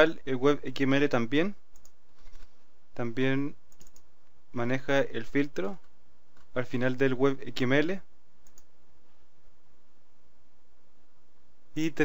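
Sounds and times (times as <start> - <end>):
steady background hiss: 0.0 - 12.0
computer mouse clicks: 1.7 - 2.5, 3.7 - 4.1, 8.4 - 8.7.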